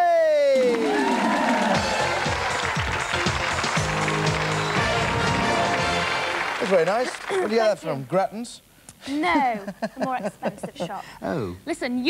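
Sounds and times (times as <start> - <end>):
studio audience applauding: 0.0 - 8.1
upbeat game-show music: 0.7 - 8.2.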